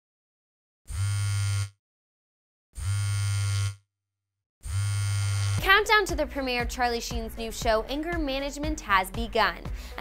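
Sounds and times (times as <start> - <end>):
phone vibrating on hard surface: 0.9 - 1.8, 2.8 - 3.8, 4.6 - 5.6.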